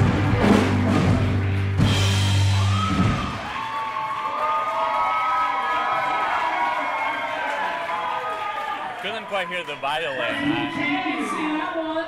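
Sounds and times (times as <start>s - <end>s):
rock band final chord: 0.0s - 3.4s
audience cheering and whooping: 2.3s - 12.0s.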